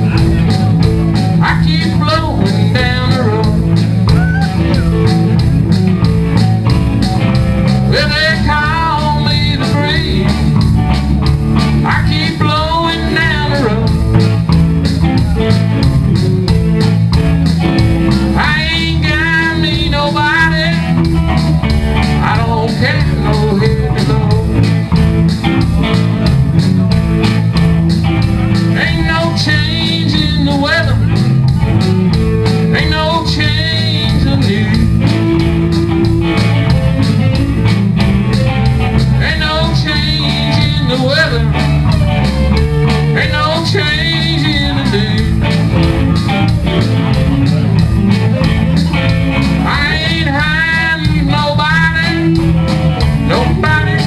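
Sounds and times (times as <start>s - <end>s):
live band playing rock music: 0.0s - 54.0s.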